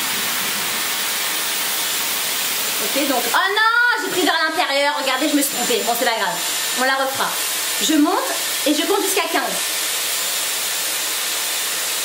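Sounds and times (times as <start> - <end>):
hair styler blowing air: 0.0 - 12.0.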